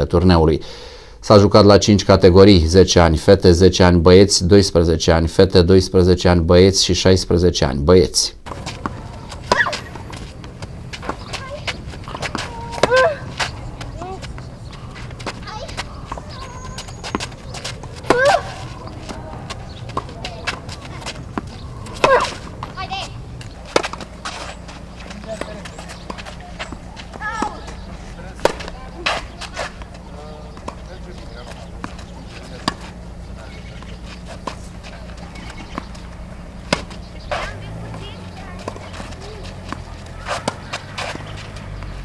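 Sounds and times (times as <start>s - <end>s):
steady low hum: 8.3s - 42.0s
ball bouncing on clay court: 8.4s - 42.0s
tennis ball struck by racket: 8.5s - 14.4s, 17.0s - 33.0s, 33.8s - 41.9s
shoe scuffs on clay: 8.5s - 22.8s, 23.4s - 42.0s.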